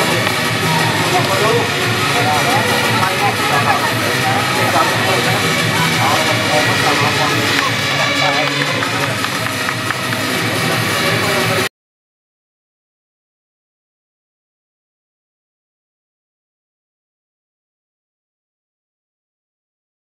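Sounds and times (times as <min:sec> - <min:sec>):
indistinct voices: 0:00.0 - 0:11.7.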